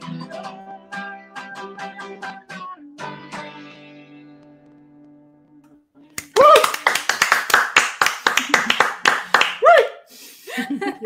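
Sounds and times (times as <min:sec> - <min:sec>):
cheering call: 0:06.2 - 0:07.0
people clapping quickly: 0:06.2 - 0:09.8.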